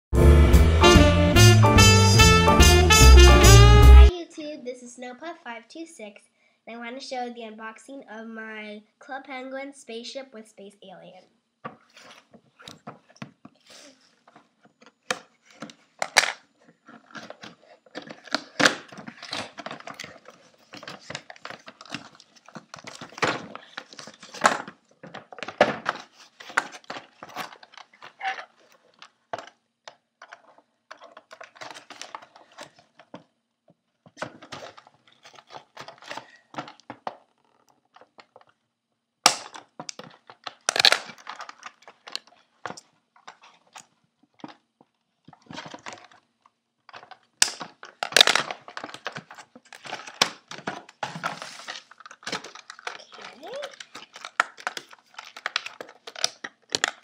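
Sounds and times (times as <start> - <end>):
toy packaging rustling and tearing: 11.8 - 33.3, 34.1 - 38.6, 39.2 - 57.0
sharp cracks of packaging: 17.0 - 29.6, 39.2 - 42.9, 46.9 - 57.0.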